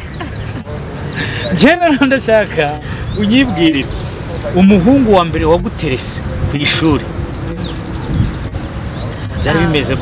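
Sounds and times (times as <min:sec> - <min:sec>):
small birds chirping and trilling: 0:00.0 - 0:10.0.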